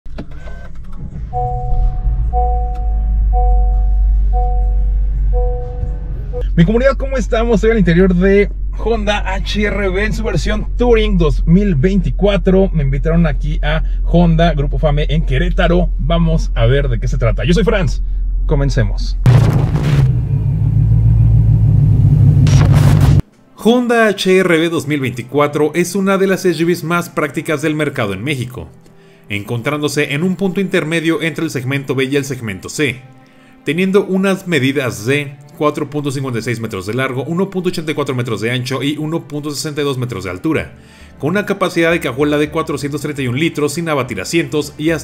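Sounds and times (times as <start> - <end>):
car engine rumble sound effect: 0.1 - 23.2
loud low hum: 0.9 - 23.2
two-pitch electronic tone: 1.2 - 6.5.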